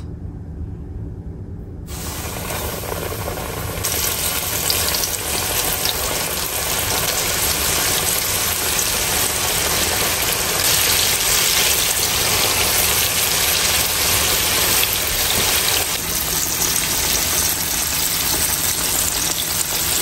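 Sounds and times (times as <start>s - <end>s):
chicken deep-frying in sizzling oil: 1.9s - 20.0s.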